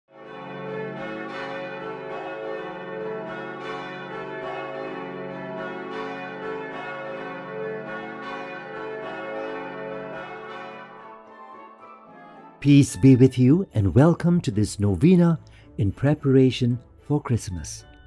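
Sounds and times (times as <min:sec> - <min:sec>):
church bells pealing: 0:00.1 - 0:17.8.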